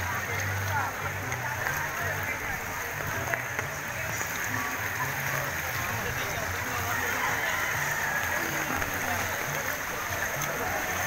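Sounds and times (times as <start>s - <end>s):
faint voices: 0.0s - 11.0s
people wading through water: 0.0s - 11.0s
rain: 0.0s - 11.0s.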